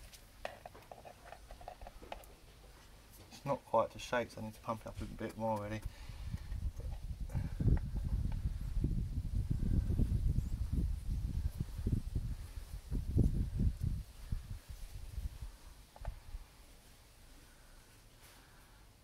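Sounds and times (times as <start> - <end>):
wind buffeting microphone: 5.8 - 16.5.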